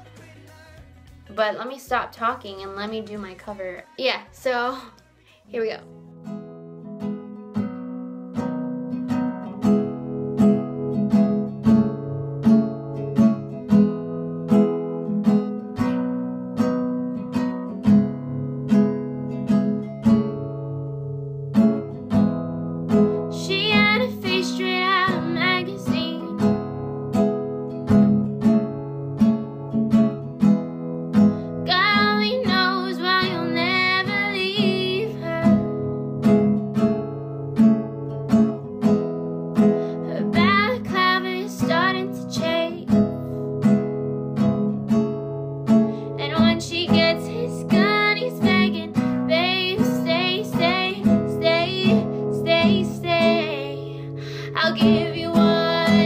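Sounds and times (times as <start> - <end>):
woman singing: 0.0 - 5.9, 23.3 - 26.8, 31.6 - 35.9, 39.9 - 43.4, 46.2 - 56.0
acoustic guitar strumming: 0.0 - 56.0.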